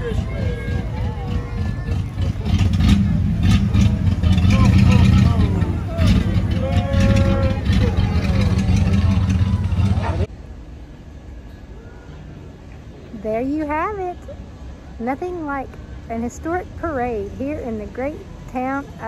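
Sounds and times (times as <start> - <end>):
people calling out: 0.0 - 2.6, 4.4 - 10.3
truck engine rumbling past: 0.0 - 19.0.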